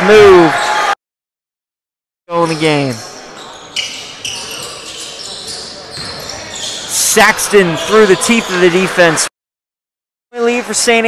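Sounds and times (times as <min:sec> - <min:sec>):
sneaker squeaks: 0:02.3 - 0:08.6.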